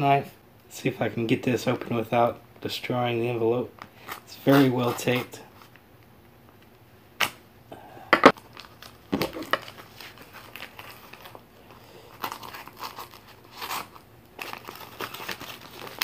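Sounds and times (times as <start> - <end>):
paper and tape crinkling: 8.3 - 16.0
envelope paper ripping: 8.4 - 16.0.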